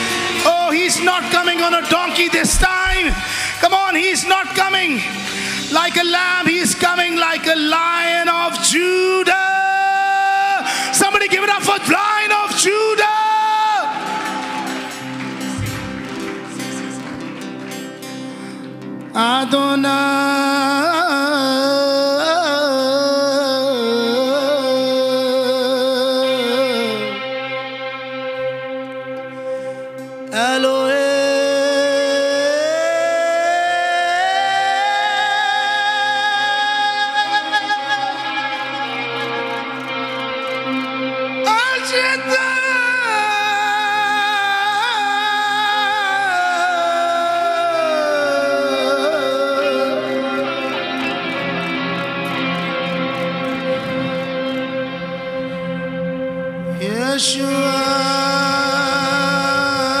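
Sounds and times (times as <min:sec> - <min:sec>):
live band playing: 0:00.0 - 0:07.6, 0:08.4 - 0:19.9, 0:35.7 - 1:00.0
man singing a long note: 0:00.0 - 0:15.2, 0:19.2 - 0:27.6, 0:30.3 - 0:39.5, 0:41.4 - 0:51.6, 0:56.6 - 1:00.0.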